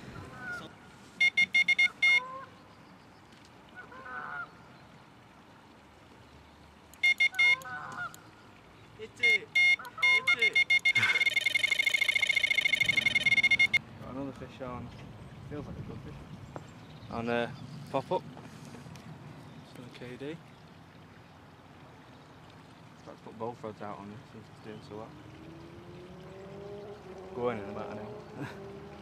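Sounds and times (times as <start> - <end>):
electronic bite alarm beeping: 1.2 - 2.2, 7.0 - 7.6, 9.2 - 13.8.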